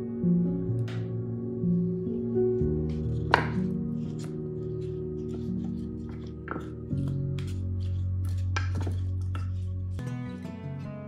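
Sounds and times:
background music: 0.0s - 11.0s
knife chopping on cutting board: 3.2s - 4.3s, 5.7s - 9.6s.

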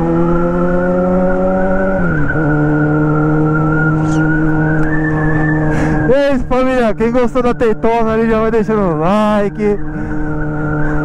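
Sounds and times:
motorcycle engine cruising: 0.0s - 11.0s
man speaking: 6.1s - 9.8s.

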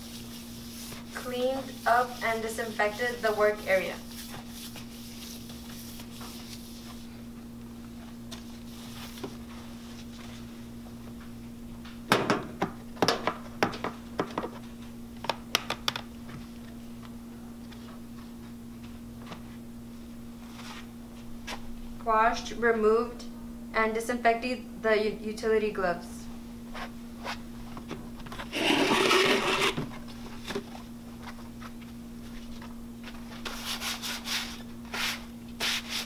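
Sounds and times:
low equipment hum: 0.0s - 36.0s
loud rustling and scraping: 28.4s - 29.9s.

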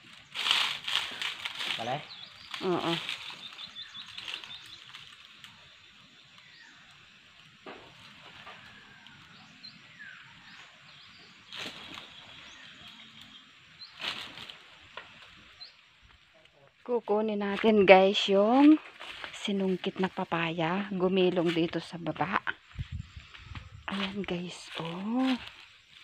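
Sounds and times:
small birds chirping: 0.0s - 26.0s.

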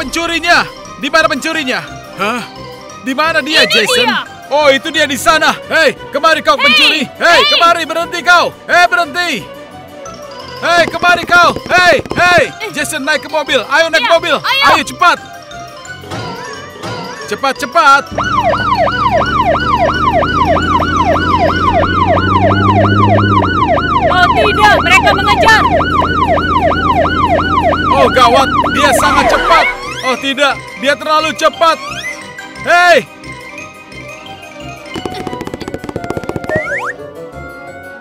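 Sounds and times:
background music: 0.0s - 38.0s
police siren yelp: 18.1s - 30.1s
rapid drum roll: 35.0s - 36.9s.

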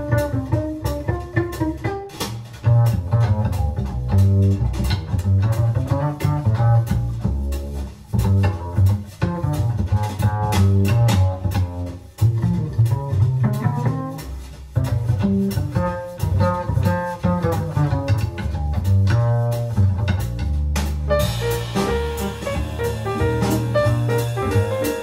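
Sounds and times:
jazz guitar and piano duo: 0.0s - 25.0s.

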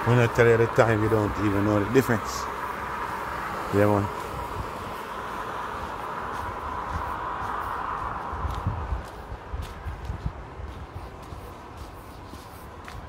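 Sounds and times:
wet street traffic hiss: 0.0s - 13.0s
soft footstep thumps: 5.9s - 13.0s.

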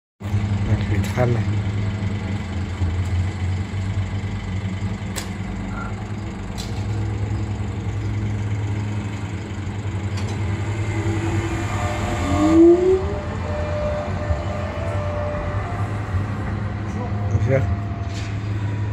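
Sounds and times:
tram rumbling past: 0.2s - 18.9s.

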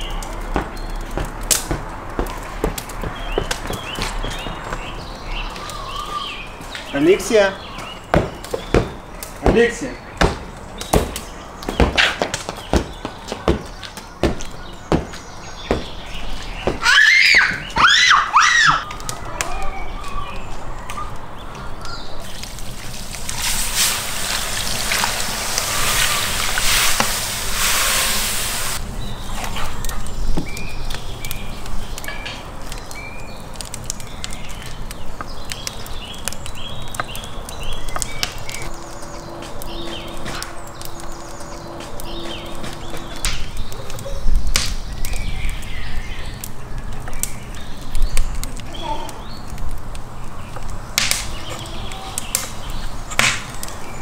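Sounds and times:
birds chirping: 0.0s - 54.0s.

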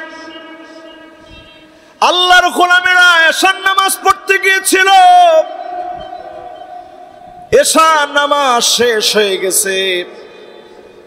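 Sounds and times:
echo of chanted voice on loudspeaker: 0.0s - 11.0s.

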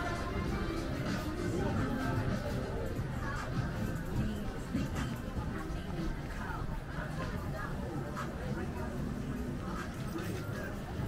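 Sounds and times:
music playing: 0.0s - 11.0s
people talking: 0.0s - 11.0s.

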